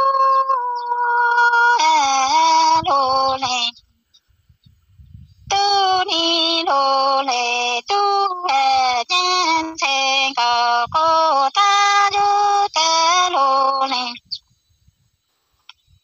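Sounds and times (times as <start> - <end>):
woman singing unaccompanied: 0.0 - 3.9, 5.4 - 14.4.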